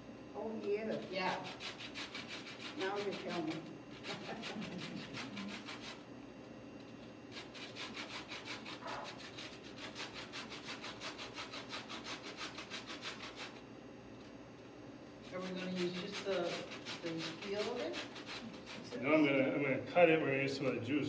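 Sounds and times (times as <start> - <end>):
metal grater rasping lemon peel: 0.9 - 6.0, 7.3 - 13.6, 15.2 - 19.0.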